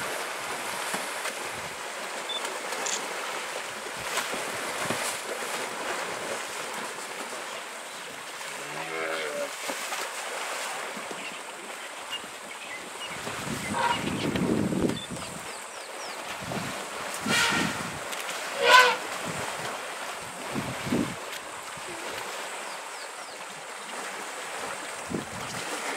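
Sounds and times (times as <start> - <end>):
water sloshing: 0.0 - 25.9
sharp splashes: 9.5 - 11.8, 15.8 - 23.0
elephant call: 13.6 - 14.2, 17.2 - 19.1.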